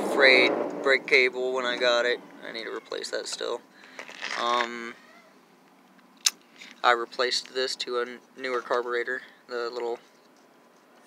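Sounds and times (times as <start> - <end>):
man speaking: 0.0 - 3.6, 4.3 - 5.0, 6.8 - 10.0.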